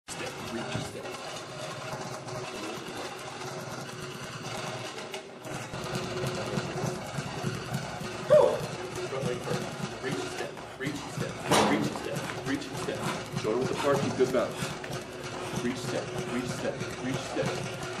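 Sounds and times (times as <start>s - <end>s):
busy gym background noise: 0.1s - 18.0s.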